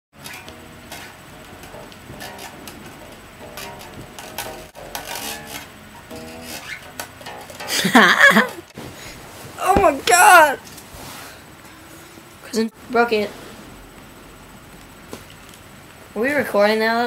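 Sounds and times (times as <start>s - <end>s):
person laughing loudly: 7.7s - 8.6s.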